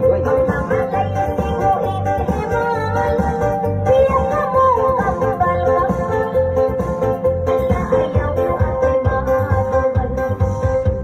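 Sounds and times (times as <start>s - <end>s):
repeating bass beat: 0.0s - 11.0s
woman singing into microphone: 0.0s - 11.0s.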